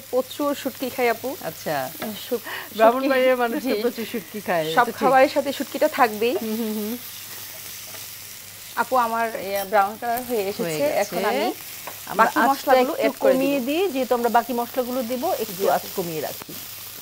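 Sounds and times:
onions sizzling in a pan: 0:00.0 - 0:17.0.

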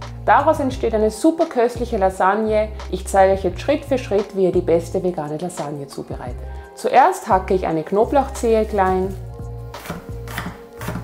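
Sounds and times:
background music with low notes: 0:00.0 - 0:11.0
knife chopping on wooden board: 0:09.8 - 0:11.0.

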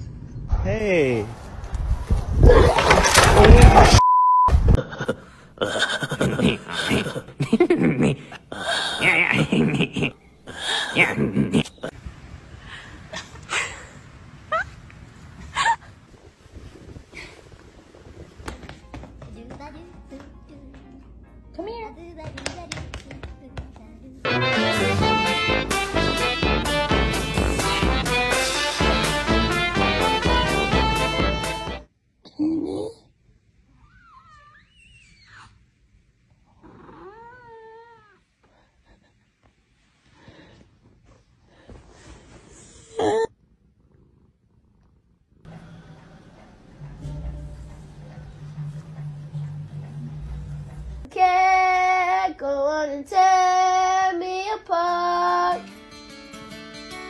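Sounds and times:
cat meowing: 0:36.6 - 0:38.2.

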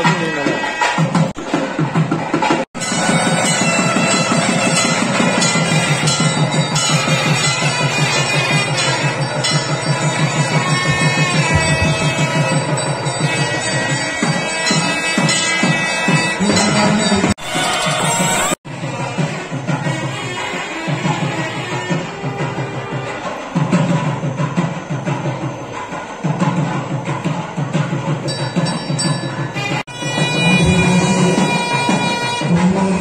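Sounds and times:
fast steady drum rhythm: 0:00.0 - 0:33.0
double-reed wind instrument melody: 0:02.8 - 0:23.6, 0:29.6 - 0:33.0.

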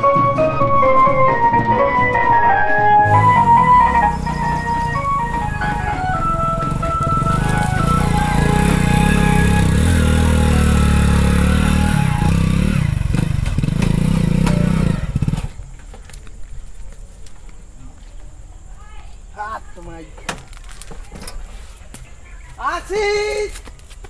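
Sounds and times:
keyboard background music: 0:00.0 - 0:12.3
motorcycle engine running: 0:03.0 - 0:15.8.

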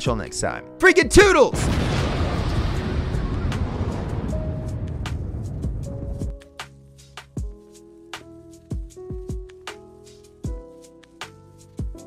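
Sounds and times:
low explosion rumble: 0:01.5 - 0:06.6.

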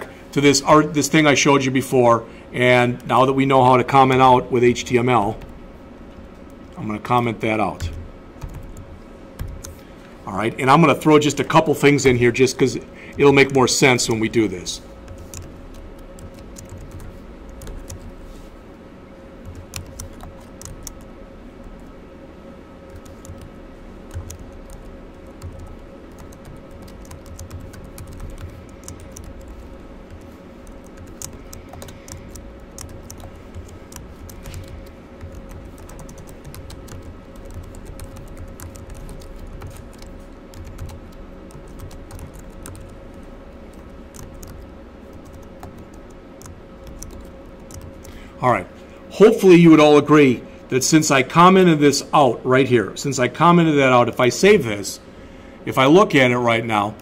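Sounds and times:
steady hum: 0:00.0 - 0:57.0.

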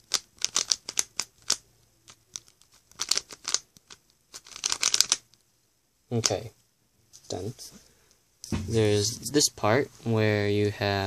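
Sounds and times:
puzzle cube plastic clicks: 0:00.0 - 0:05.5.

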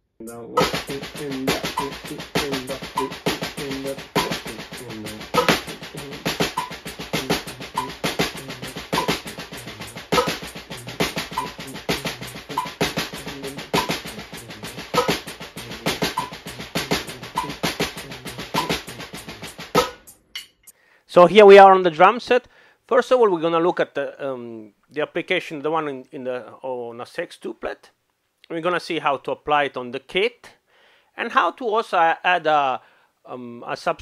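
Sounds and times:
metronome beeping: 0:00.2 - 0:15.4, 0:16.0 - 0:17.8, 0:18.5 - 0:19.0.

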